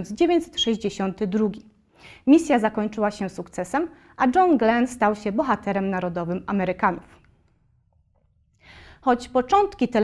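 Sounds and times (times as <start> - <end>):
woman breathing in: 1.9 - 2.2, 8.6 - 9.0.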